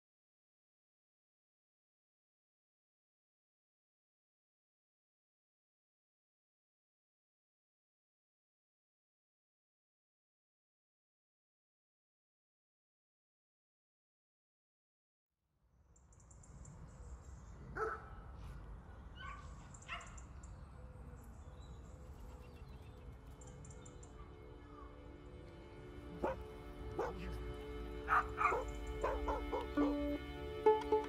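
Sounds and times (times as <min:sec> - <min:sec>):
dog barking and yipping: 0:17.8 - 0:18.1, 0:19.2 - 0:20.2, 0:26.2 - 0:26.4, 0:27.0 - 0:27.3, 0:28.1 - 0:30.0
music with plucked notes: 0:25.6 - 0:31.0.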